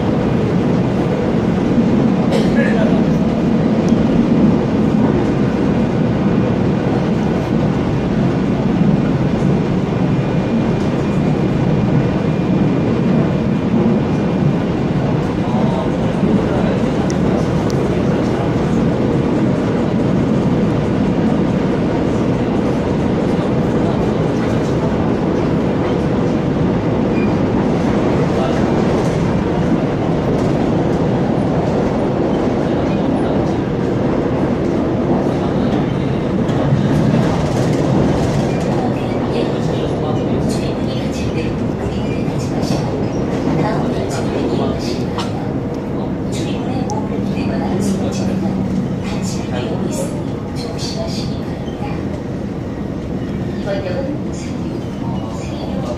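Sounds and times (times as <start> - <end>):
train wheels rumbling on rail: 0.0 - 55.9.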